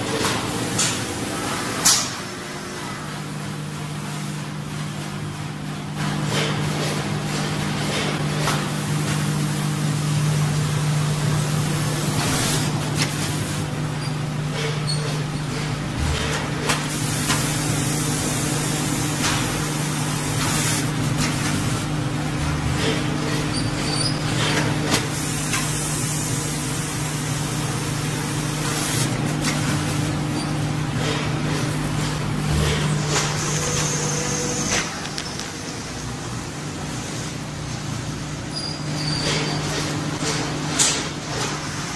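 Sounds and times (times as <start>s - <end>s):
packaging machine hum: 0.0s - 41.9s.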